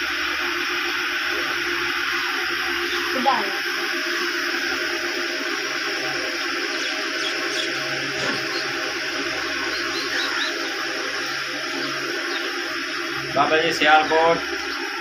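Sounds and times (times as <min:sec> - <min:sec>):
electric fan running: 0:00.0 - 0:15.0.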